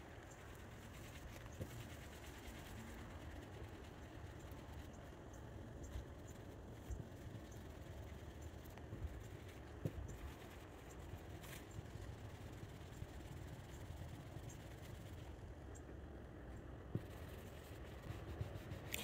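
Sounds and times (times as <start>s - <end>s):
low background rumble: 0.0s - 19.0s
applicator pad rubbing on car paint: 17.0s - 19.0s.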